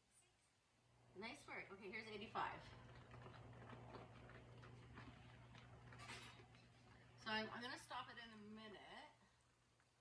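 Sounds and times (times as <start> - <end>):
pottery wheel faint hum: 0.0 - 10.0.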